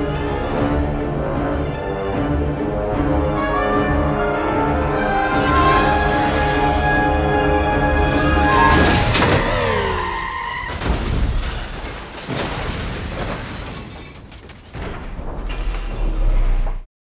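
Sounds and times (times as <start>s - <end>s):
orchestral action music: 0.0s - 10.5s
falling sliding tones: 4.4s - 10.5s
boom and shatter: 10.7s - 16.9s.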